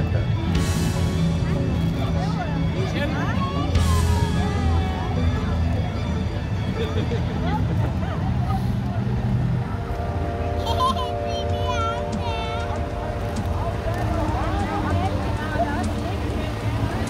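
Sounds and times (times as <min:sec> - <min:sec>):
music: 0:00.0 - 0:17.0
onlookers' voices: 0:00.0 - 0:17.0.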